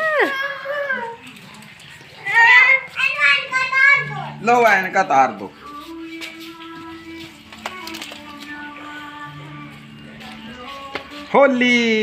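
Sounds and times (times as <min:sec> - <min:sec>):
child calling out and shouting: 0:02.2 - 0:04.4.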